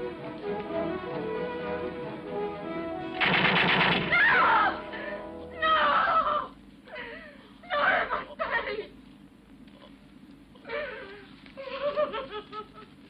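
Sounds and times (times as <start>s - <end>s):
film score music: 0.0s - 6.4s
automatic gunfire bursts: 3.2s - 4.3s.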